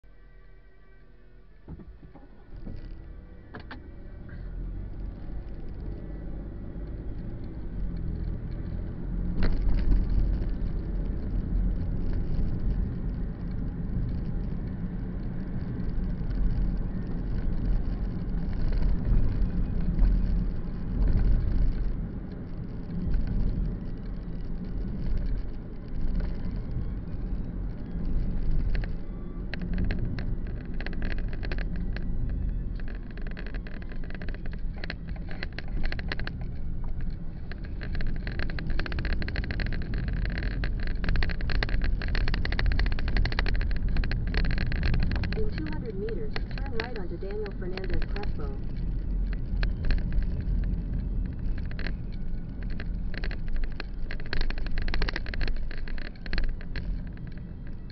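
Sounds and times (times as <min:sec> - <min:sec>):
car engine and road rumble: 0:00.0 - 0:57.9.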